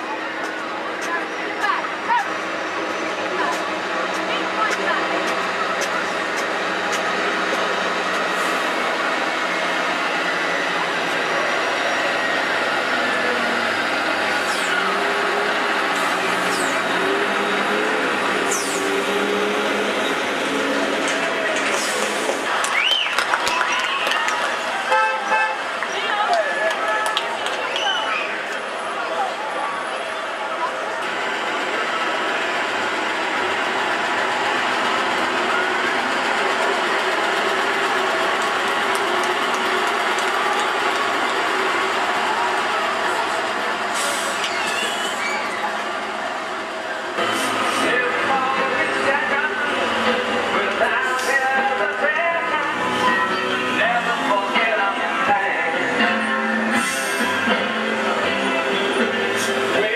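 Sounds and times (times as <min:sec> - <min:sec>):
lorry diesel engine passing: 0:00.0 - 0:24.9, 0:26.7 - 0:59.9
high-pitched squeaks: 0:44.1 - 0:45.8.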